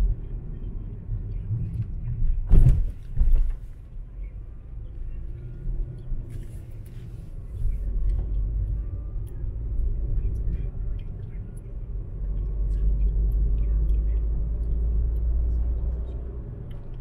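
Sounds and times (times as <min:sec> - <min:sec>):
car engine and tyre rumble: 0:00.0 - 0:17.0
car knocks on rough road: 0:02.5 - 0:03.6.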